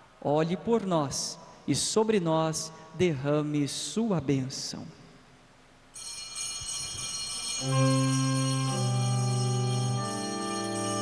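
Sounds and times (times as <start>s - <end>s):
altar bells ringing: 6.0s - 11.0s.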